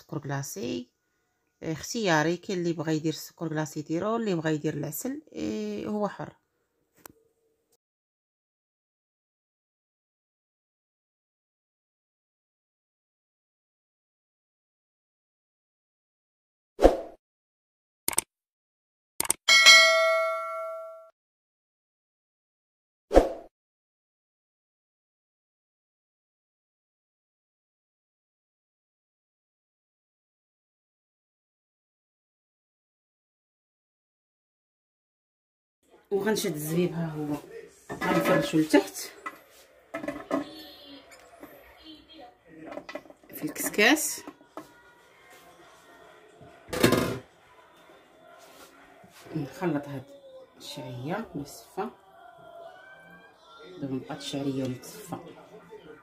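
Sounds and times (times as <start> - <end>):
mouse clicks: 18.1 - 18.3
notification bell ding: 19.5 - 21.1.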